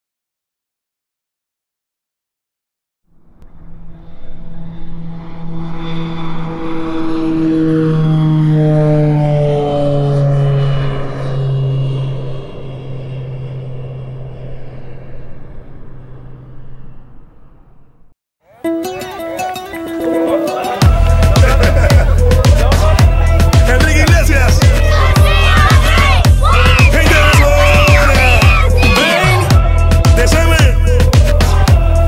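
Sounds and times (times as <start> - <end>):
droning engine passing by: 3.1 - 18.1, 19.2 - 32.0.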